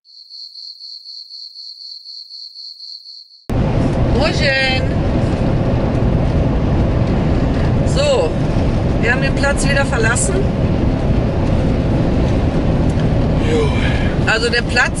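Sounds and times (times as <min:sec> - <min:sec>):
road and engine noise in vehicle: 0:03.5 - 0:15.0.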